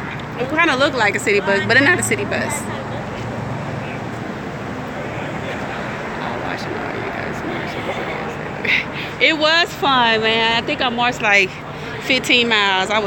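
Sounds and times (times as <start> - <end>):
bus engine and road noise: 0.0 - 13.0.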